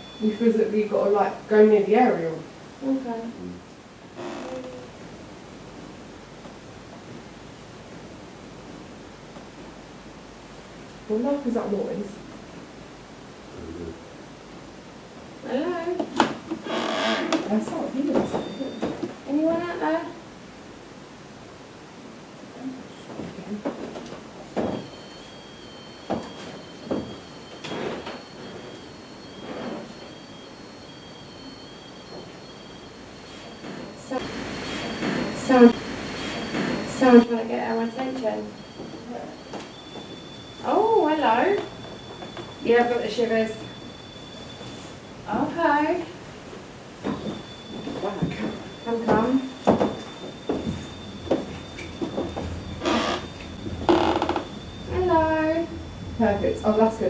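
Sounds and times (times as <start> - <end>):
faint steady high whine: 0.0 - 57.0
breathy voice-like sounds: 13.5 - 14.0
high-pitched electronic tones: 24.7 - 45.9, 47.0 - 57.0
footsteps on wooden floorboards: 47.0 - 53.2.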